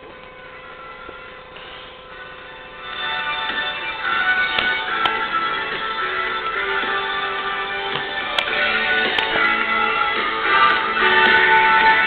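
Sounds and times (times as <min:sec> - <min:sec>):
thin music from radio: 0:00.0 - 0:12.0.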